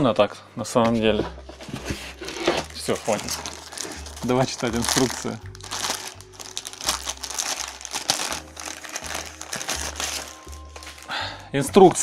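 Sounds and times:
plastic bag crinkling: 2.2 - 11.1.

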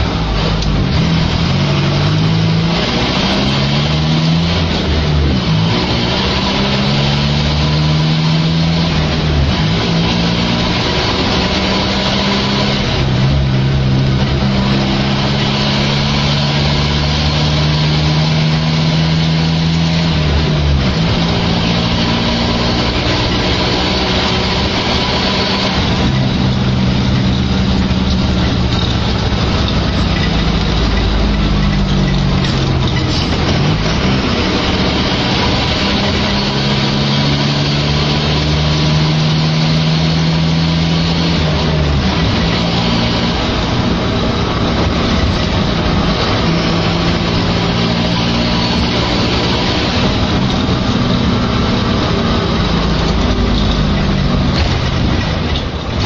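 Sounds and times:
diesel bus engine: 0.0 - 56.0.

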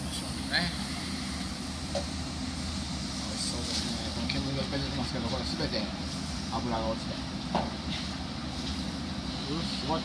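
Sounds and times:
oven rushing hiss: 0.0 - 7.2.

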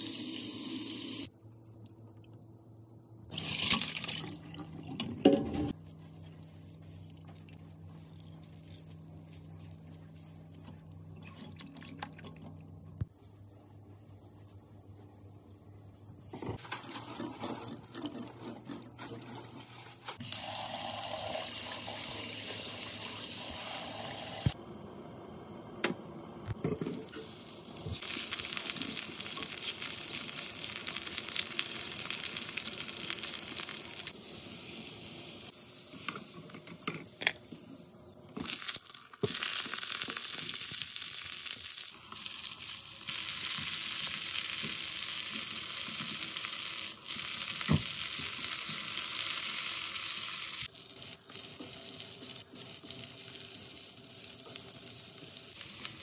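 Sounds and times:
tap water running: 0.0 - 1.3, 20.2 - 24.6
food sizzling in hot oil: 26.9 - 36.0, 38.4 - 56.0.

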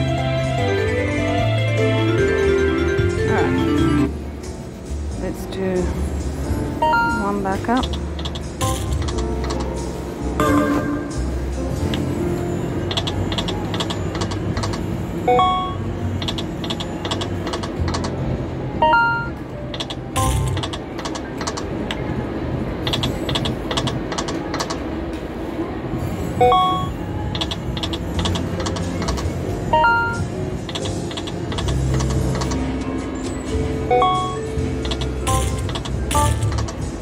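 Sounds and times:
machine music: 0.0 - 4.8, 6.4 - 21.8, 26.4 - 37.0
slot reels clicking: 6.9 - 9.8, 12.9 - 18.2, 18.8 - 22.0, 22.8 - 24.8, 26.4 - 32.8, 33.9 - 36.9
casino hum: 10.4 - 12.3.

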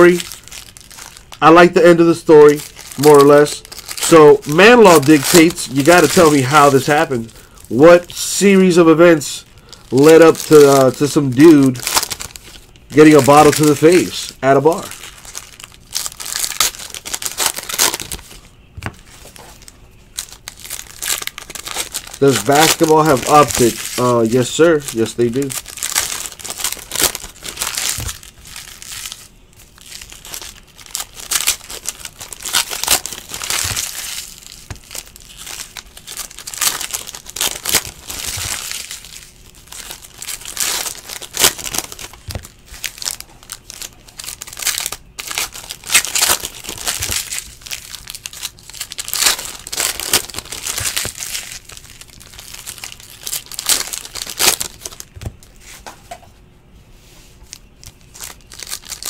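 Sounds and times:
card packs tearing open: 0.0 - 55.6, 57.8 - 59.0
plastic wrappers crinkling: 0.0 - 56.2, 57.4 - 59.0
cards handled and stacked: 18.8 - 19.6.

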